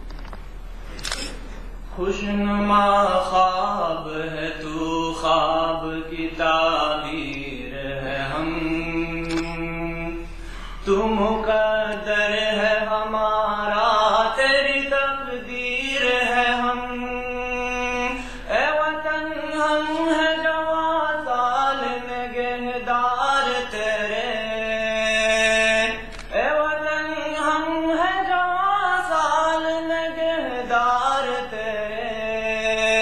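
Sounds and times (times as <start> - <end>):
man singing unaccompanied: 1.9 - 33.0.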